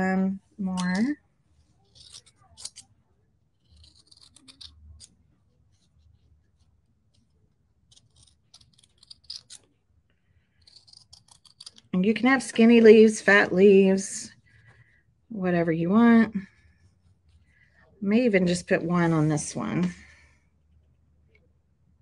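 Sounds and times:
scissors snipping felt: 0:01.9 - 0:02.9, 0:03.5 - 0:05.2, 0:07.1 - 0:09.7, 0:10.6 - 0:11.9.

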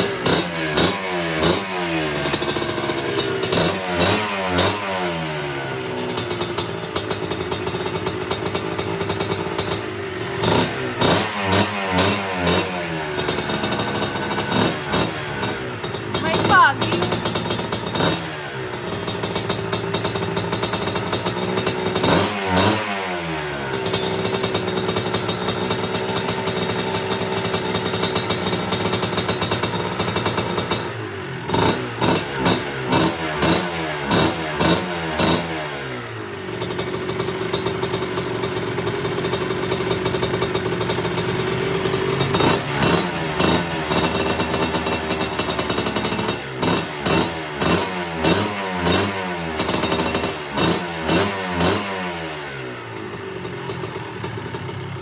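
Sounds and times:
dirt bike engine idling and revving: 0:00.0 - 0:55.0.

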